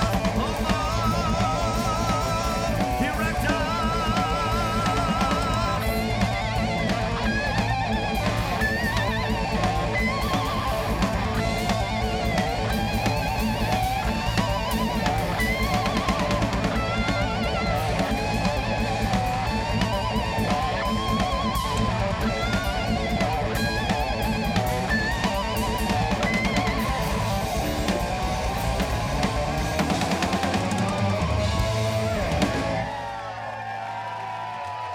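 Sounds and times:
electric lead guitar bent notes: 0.0s - 33.0s
heavy metal band playing: 0.0s - 34.9s.

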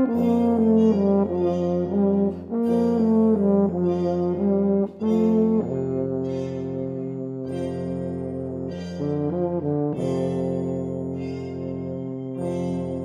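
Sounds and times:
brass band playing chords: 0.0s - 7.6s, 8.3s - 13.0s.

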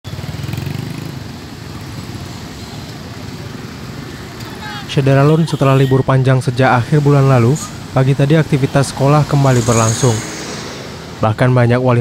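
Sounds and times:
traffic drone: 0.0s - 12.0s
motorcycle engines passing: 0.1s - 12.0s.

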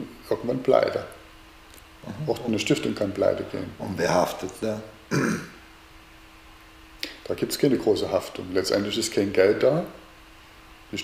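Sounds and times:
faint steady hum: 0.0s - 11.0s
man clearing his throat: 5.1s - 5.6s.

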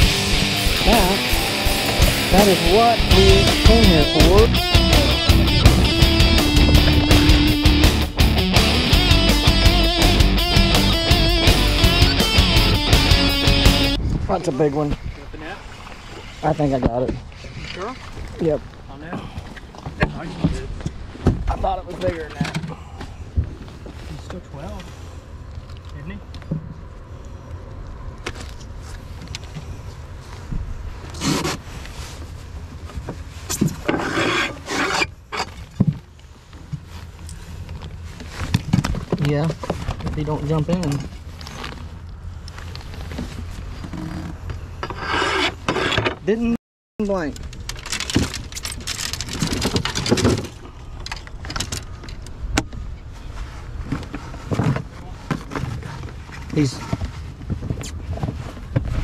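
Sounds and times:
steady low rumble: 0.0s - 17.4s
rustling and scraping of handling: 14.0s - 59.0s
fishing gear clattering: 47.2s - 52.3s.

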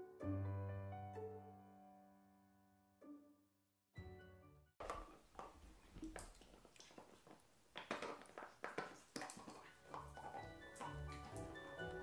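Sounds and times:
background music: 0.0s - 4.7s, 9.8s - 12.0s
dog chewing a toy: 4.8s - 12.0s.

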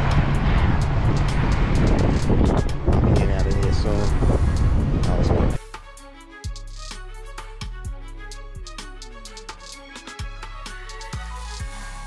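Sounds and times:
diesel truck engine rumbling: 0.0s - 5.6s
loud outdoor noise: 0.0s - 5.6s
violin music: 0.0s - 12.0s
man's voice: 2.8s - 4.3s.

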